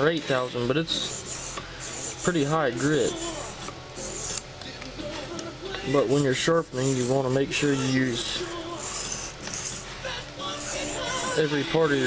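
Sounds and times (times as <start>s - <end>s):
knife scraping on whetstone: 0.2s - 4.5s, 6.0s - 10.0s, 10.6s - 12.0s.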